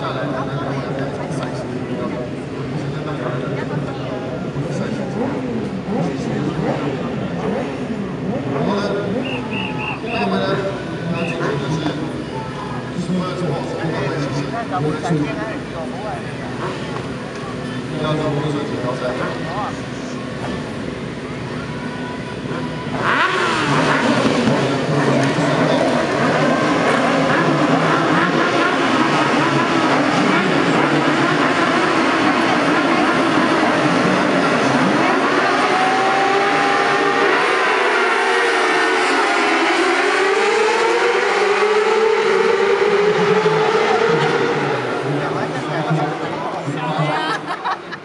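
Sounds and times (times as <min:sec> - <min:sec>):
racing motorcycles revving: 0:00.0 - 0:48.0.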